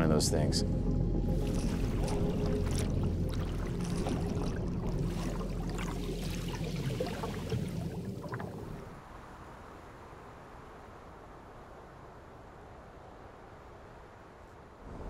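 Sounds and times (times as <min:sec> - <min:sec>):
steady low hum: 0:00.0 - 0:09.0
underwater bubbling: 0:00.9 - 0:09.0.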